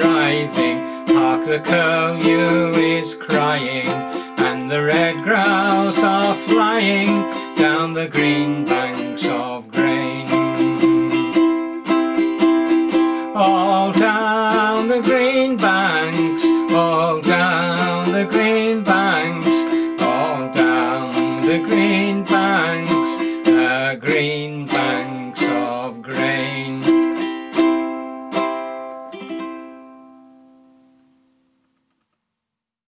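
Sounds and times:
ukulele strumming: 0.0 - 31.3.

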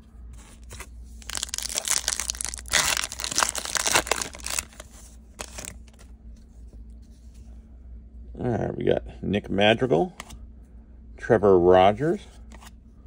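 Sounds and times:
wrapper tearing and crinkling: 1.2 - 6.0.

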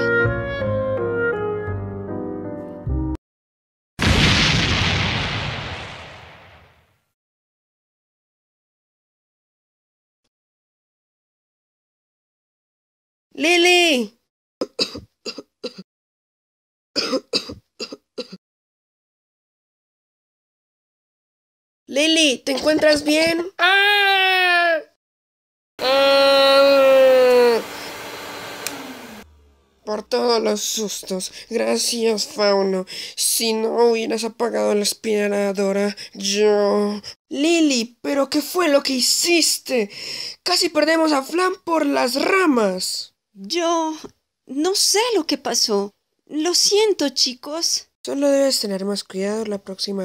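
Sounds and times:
explosion blast: 4.0 - 7.0
person coughing: 14.6 - 15.8, 17.0 - 18.4
vacuum motor winding down: 25.8 - 30.2
switch click: 28.6 - 28.8.

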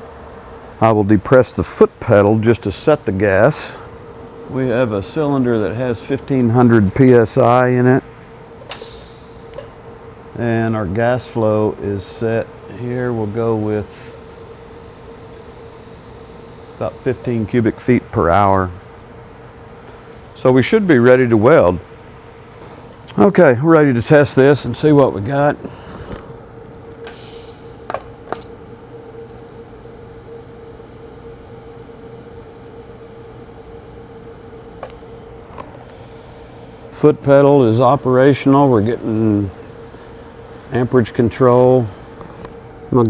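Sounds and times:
welder low hum: 0.0 - 43.0.

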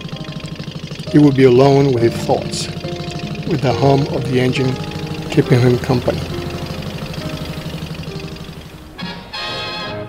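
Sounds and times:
boat engine throbbing: 0.0 - 10.0
guitar music: 0.0 - 10.0.

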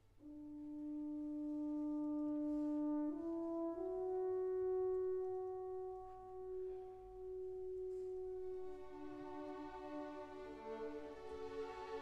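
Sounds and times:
french horn holding a note: 0.2 - 11.4.

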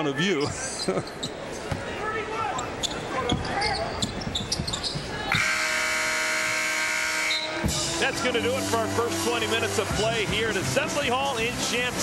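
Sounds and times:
arena crowd noise: 0.0 - 12.0
arena horn: 5.3 - 9.9.

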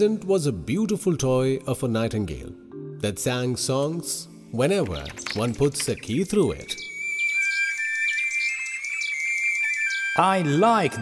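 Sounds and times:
toy bird whistling tune: 6.0 - 11.0.

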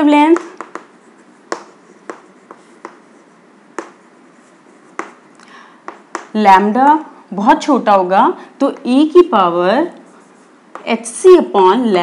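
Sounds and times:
chalk tapping on chalkboard: 0.0 - 6.4, 10.2 - 11.0.

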